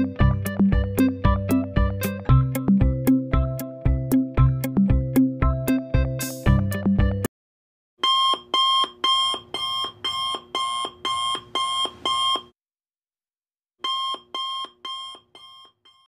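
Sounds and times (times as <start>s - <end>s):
background music: 0.0s - 7.3s
electronic alarm clock beeping: 8.0s - 12.5s, 13.8s - 16.0s.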